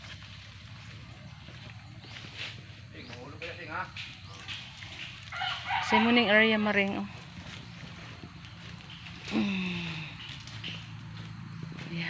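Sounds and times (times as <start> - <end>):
rooster crowing: 5.3 - 6.7.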